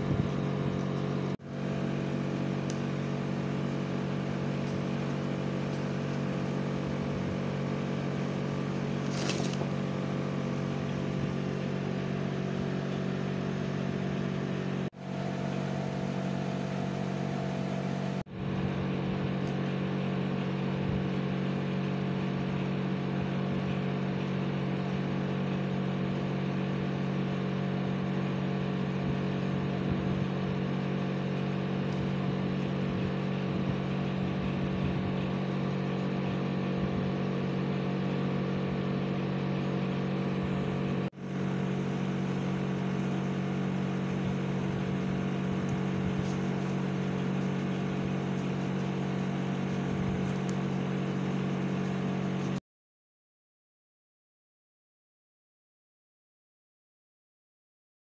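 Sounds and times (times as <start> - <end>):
low motor hum: 0.0 - 52.6.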